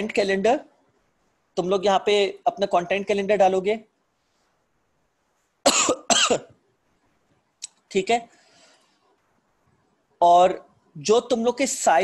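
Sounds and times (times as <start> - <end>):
man coughing: 5.6 - 6.6.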